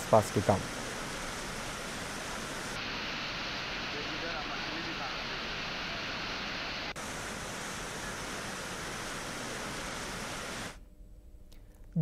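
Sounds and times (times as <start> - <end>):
floodwater rushing: 0.0 - 10.8.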